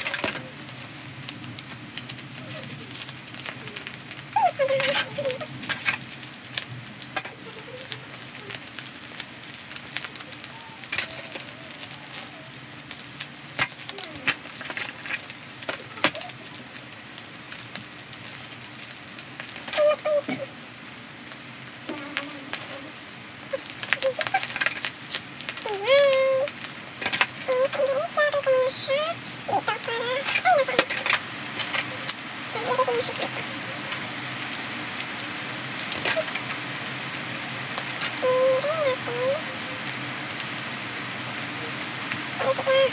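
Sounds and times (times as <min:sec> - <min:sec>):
faint children's voices: 0:00.0 - 0:01.3, 0:02.0 - 0:18.7, 0:19.5 - 0:20.7, 0:21.6 - 0:42.9.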